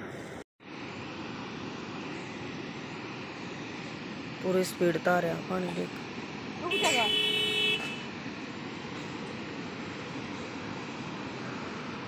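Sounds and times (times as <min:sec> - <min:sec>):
water rushing through culverts: 0:00.7 - 0:12.0
vehicle horn honk: 0:06.7 - 0:08.1.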